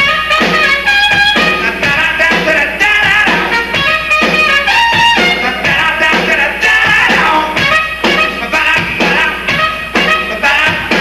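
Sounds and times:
horn holding long notes: 0:00.0 - 0:06.1, 0:06.9 - 0:11.0
drum hits: 0:00.2 - 0:11.0.

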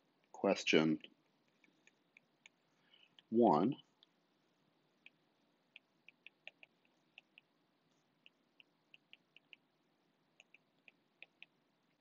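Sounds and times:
stylus tapping on tablet screen: 0:05.0 - 0:07.6, 0:08.2 - 0:09.7, 0:10.4 - 0:12.0.

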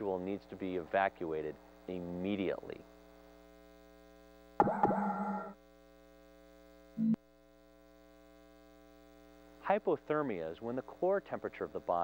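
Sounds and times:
electrical mains hum: 0:00.0 - 0:12.0
electronic tone: 0:07.0 - 0:07.2.

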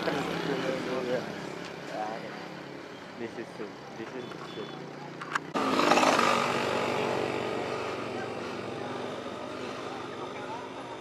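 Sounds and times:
motorcycle passing: 0:00.0 - 0:03.0, 0:04.8 - 0:11.0.

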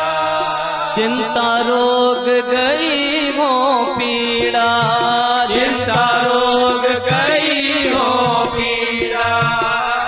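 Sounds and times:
harmonium chords: 0:00.0 - 0:10.0
voices singing a chant: 0:00.0 - 0:10.0
low drum beat: 0:04.3 - 0:10.0.

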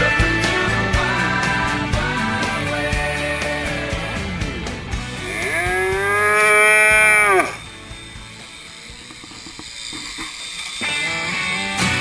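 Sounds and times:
calf bawling: 0:05.2 - 0:07.6.

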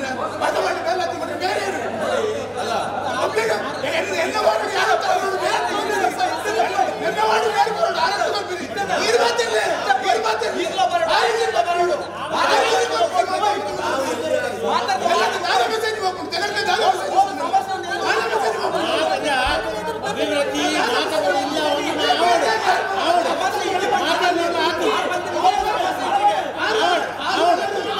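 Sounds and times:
crowd of men arguing: 0:00.0 - 0:27.9.

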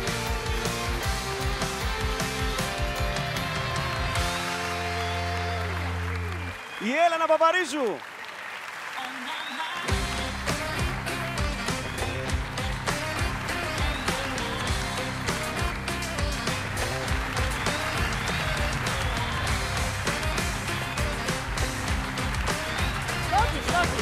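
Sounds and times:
live band playing pop music: 0:00.0 - 0:06.2, 0:09.7 - 0:24.0
studio audience applauding: 0:00.0 - 0:24.0.

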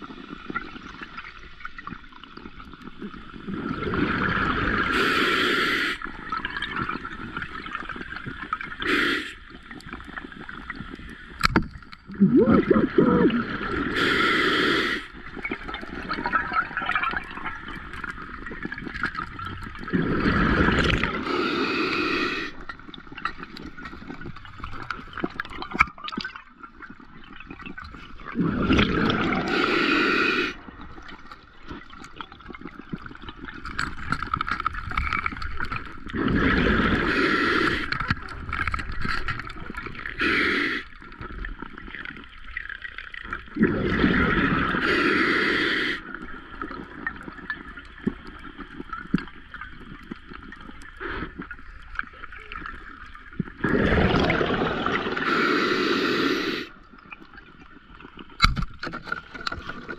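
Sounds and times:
diver's exhaled bubbles gurgling: 0:00.0 - 0:05.2, 0:06.0 - 0:58.6
muffled underwater hums: 0:12.0 - 0:18.5.

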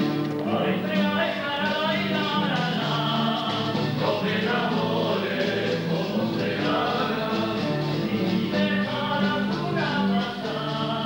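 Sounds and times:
choir of voices singing: 0:00.4 - 0:11.0.

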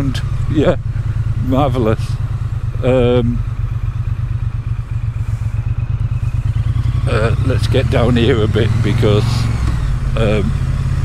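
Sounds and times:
motorcycle engine running: 0:00.0 - 0:11.0
pulsing exhaust rumble: 0:00.0 - 0:11.0.

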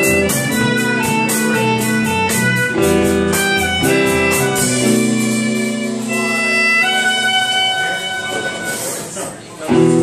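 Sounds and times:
violin holding high note: 0:00.0 - 0:09.2
live band playing: 0:00.0 - 0:10.0.

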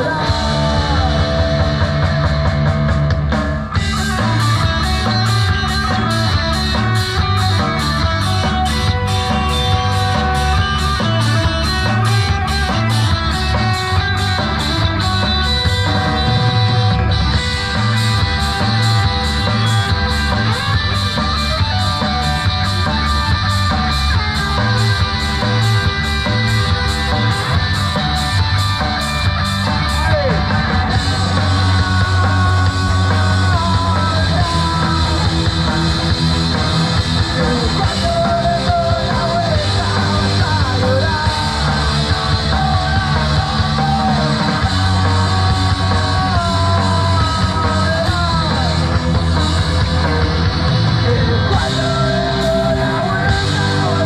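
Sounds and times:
rock band playing: 0:00.0 - 0:54.0
steady drumbeat: 0:00.0 - 0:54.0.

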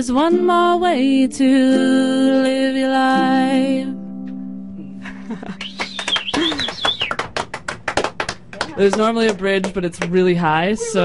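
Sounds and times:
people clapping: 0:05.4 - 0:10.3
person cheering: 0:05.6 - 0:07.1.

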